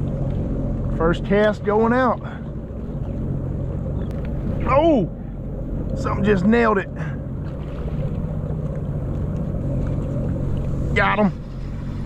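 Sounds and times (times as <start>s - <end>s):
jet ski engine idling: 0.0s - 12.0s.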